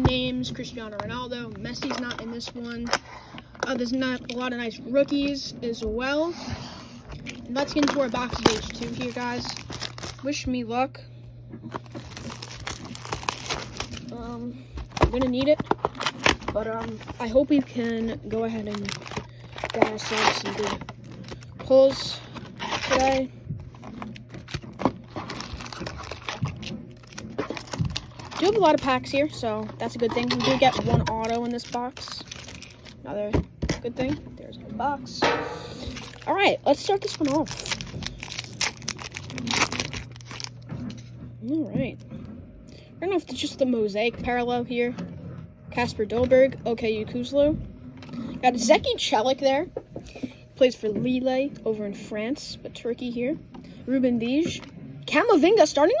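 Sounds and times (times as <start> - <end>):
plastic shrink wrap crinkling: 7.1 - 10.4, 11.6 - 34.2, 35.7 - 41.0.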